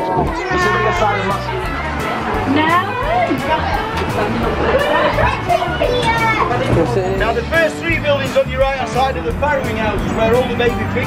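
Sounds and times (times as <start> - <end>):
children's voices: 0.0 - 7.2
people chattering: 0.0 - 11.0.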